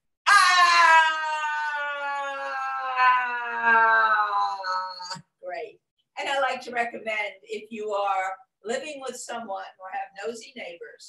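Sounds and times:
woman's loud ah howl: 0.3 - 5.0.

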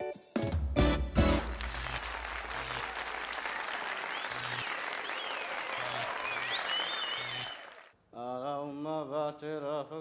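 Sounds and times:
applause: 1.3 - 8.0.

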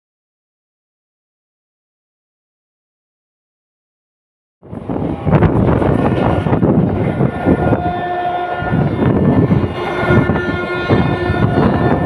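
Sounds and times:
train wheels rumbling on rails: 4.6 - 12.0.

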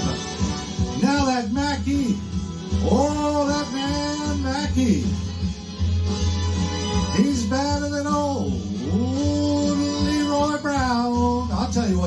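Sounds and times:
big-band backing music: 0.0 - 12.0
man singing long note: 8.8 - 10.7.

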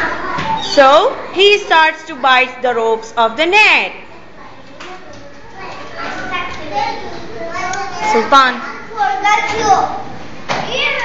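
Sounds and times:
young children murmuring: 0.0 - 2.6, 4.0 - 11.0.

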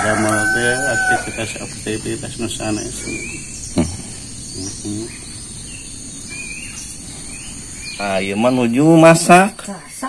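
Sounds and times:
bird chirps: 0.0 - 10.0
insect drone: 0.0 - 10.0.

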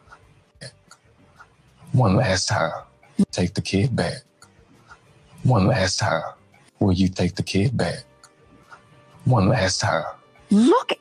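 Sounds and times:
man speaking: 1.8 - 4.3, 5.4 - 8.2, 9.2 - 10.2.

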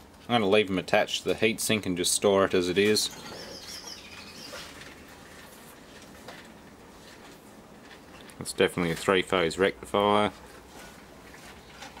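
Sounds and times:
high warbling chirp: 3.1 - 4.7.

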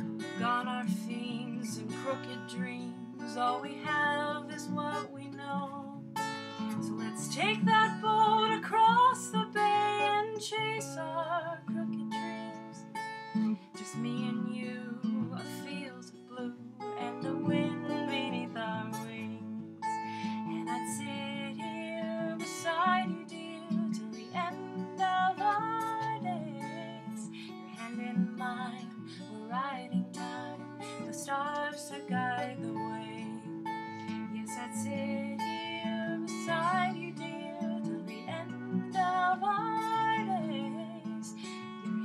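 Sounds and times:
acoustic guitar strummed and picked: 0.0 - 42.0.

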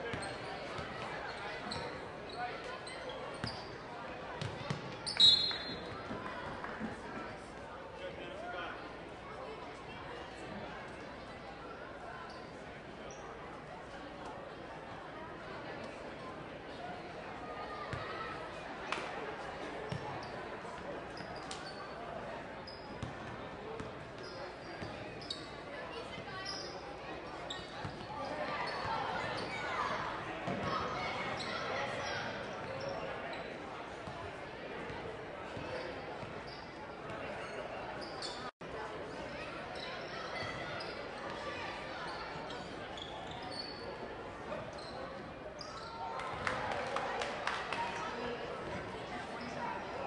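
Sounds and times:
spectators chattering: 0.0 - 50.0.

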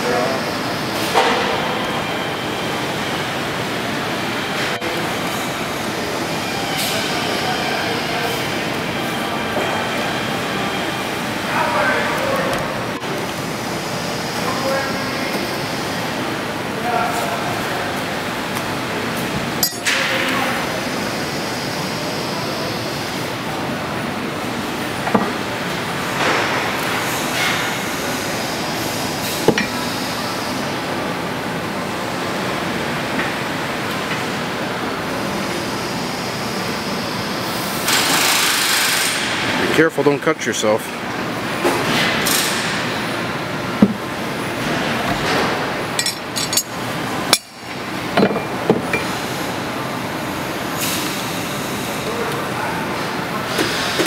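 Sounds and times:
industrial shop background noise: 0.0 - 54.0
metallic clinks of steel tooling: 19.6 - 20.0.

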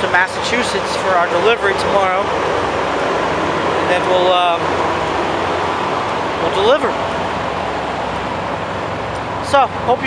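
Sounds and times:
diesel truck engines idling: 0.0 - 10.0.

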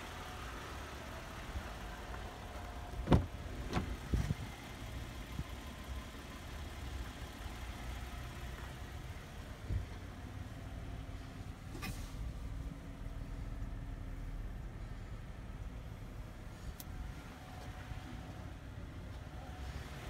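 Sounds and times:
car door latch clunk: 3.0 - 4.0.

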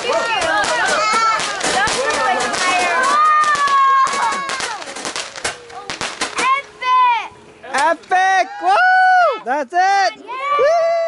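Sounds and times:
people shouting: 0.0 - 4.8, 8.4 - 9.5, 10.3 - 11.0
fireworks crackling and popping: 0.0 - 6.7.

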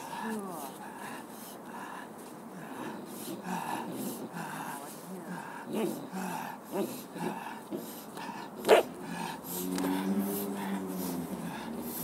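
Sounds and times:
puppy drawn-out low whine: 2.6 - 12.0.

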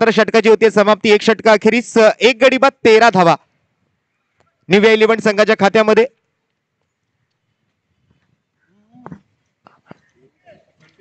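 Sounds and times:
open-air ambience: 0.0 - 11.0.

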